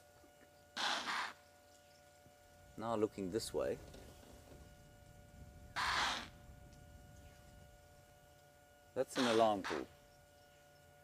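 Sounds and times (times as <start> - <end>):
impala alarm snort: 0.8 - 1.4, 5.8 - 6.3, 9.1 - 9.9.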